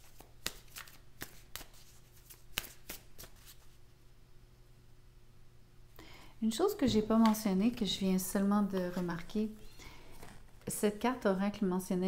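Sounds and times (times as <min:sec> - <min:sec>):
cards rustling: 0:00.0 - 0:03.8, 0:08.6 - 0:09.4
playing cards snapping: 0:00.2 - 0:03.4.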